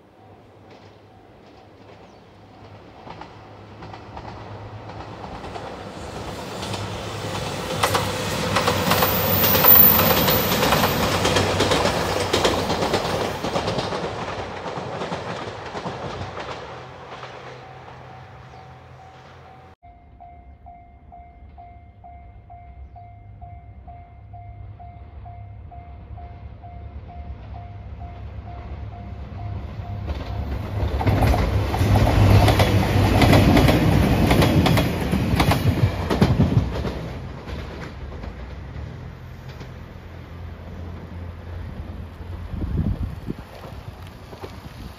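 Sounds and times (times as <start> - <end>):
diesel train passing: 0.0 - 44.9
level-crossing warning bell ringing: 17.5 - 30.9.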